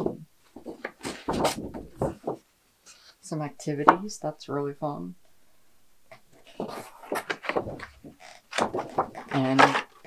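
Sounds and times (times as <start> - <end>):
paper sheets rustling: 0.5 - 2.4, 6.3 - 10.0.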